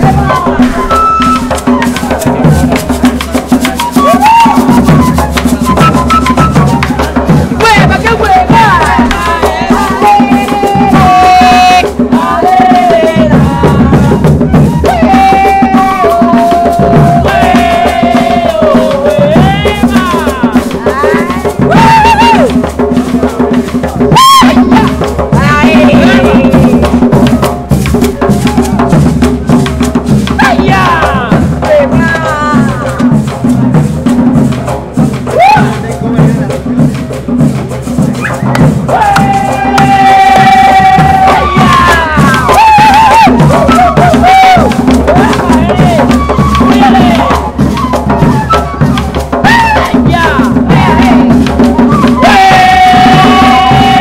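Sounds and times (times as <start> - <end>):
hand drums: 0.0 - 54.0.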